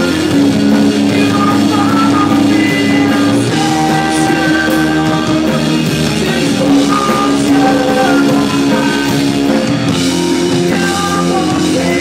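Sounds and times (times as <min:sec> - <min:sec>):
bass guitar: 0:00.0 - 0:12.0
drum kit with cymbals: 0:00.0 - 0:12.0
electric guitars sustained notes: 0:00.0 - 0:12.0.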